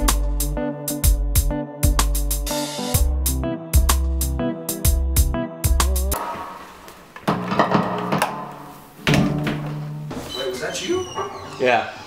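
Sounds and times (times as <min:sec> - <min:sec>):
guitar notes plucked: 0:06.1 - 0:10.2
guitar chord ringing: 0:06.2 - 0:10.2.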